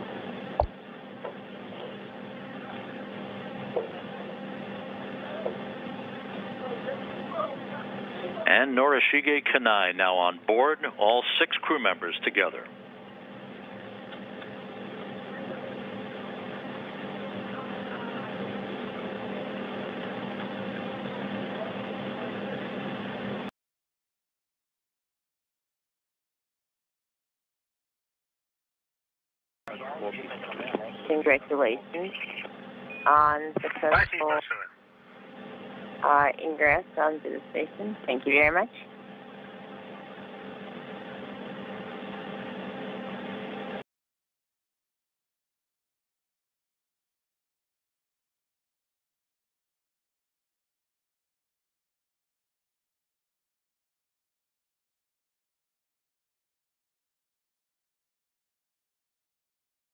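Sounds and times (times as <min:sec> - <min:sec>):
ventilation fans hiss and hum: 0:00.0 - 0:23.5, 0:29.7 - 0:43.8.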